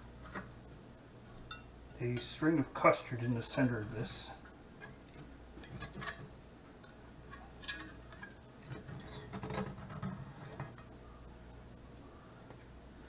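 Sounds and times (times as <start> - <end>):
metal server tapping skillet: 1.5 - 2.4.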